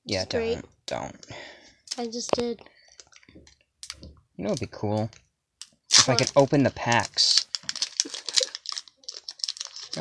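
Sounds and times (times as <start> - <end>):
foil wrapper crinkling: 5.9 - 10.0.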